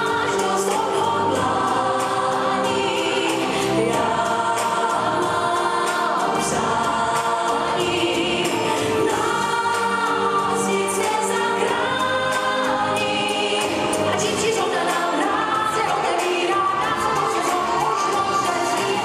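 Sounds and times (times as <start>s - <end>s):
pop song with sung vocals: 0.0s - 19.0s.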